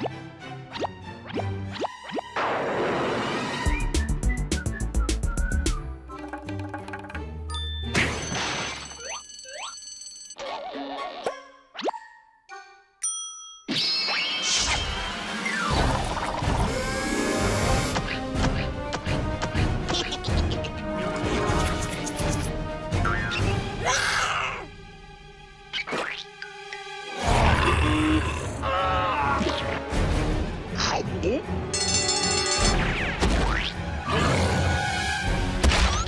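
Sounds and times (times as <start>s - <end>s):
music: 0.0s - 8.4s, 11.4s - 13.2s, 14.2s - 36.0s.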